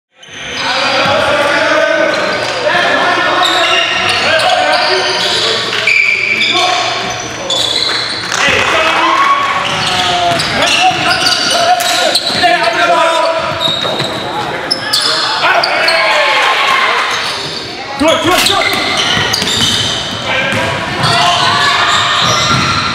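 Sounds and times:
people shouting in echoing hall: 8.4 - 13.5, 14.9 - 19.2, 20.2 - 22.9
basketball bouncing on wooden floor: 22.2 - 22.9.

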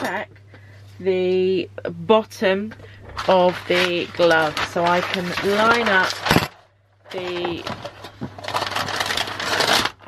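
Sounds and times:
tracing paper rustling: 3.0 - 10.0.

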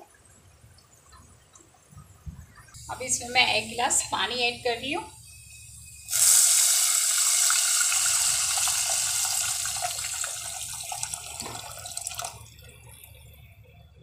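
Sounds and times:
water splashing into hot oil: 6.1 - 13.0.

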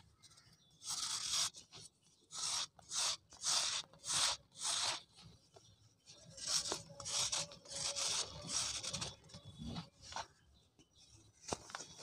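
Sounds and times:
knife scraping cement: 2.3 - 5.1, 6.4 - 9.2.

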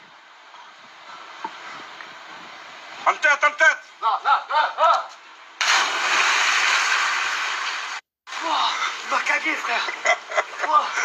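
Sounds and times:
water splashing in pool: 5.6 - 9.9.

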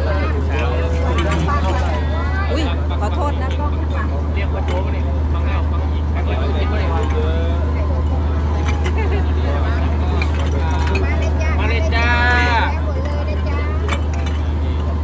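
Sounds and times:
low machine hum: 0.0 - 15.0
people talking: 0.0 - 15.0.

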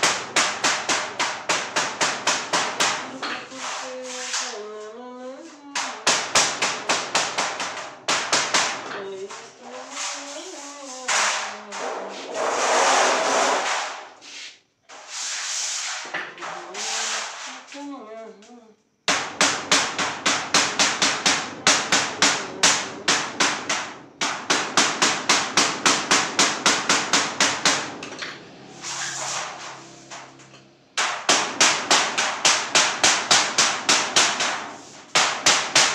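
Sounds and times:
hammer striking sheet steel: 0.0 - 3.8, 19.1 - 28.1, 28.7 - 35.9
rasping scraping noise: 9.2 - 17.8.

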